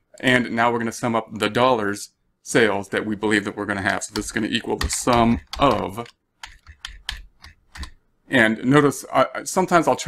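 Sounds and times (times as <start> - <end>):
keyboard key clicks: 4.1 - 8.0.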